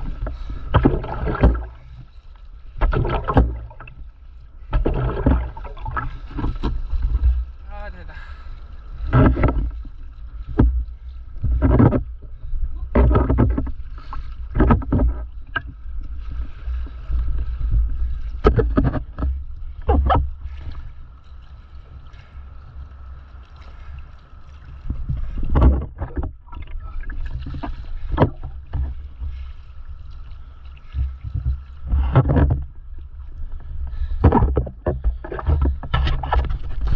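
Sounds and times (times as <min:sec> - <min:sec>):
water splashing around paddleboard: 0:00.0 - 0:36.9.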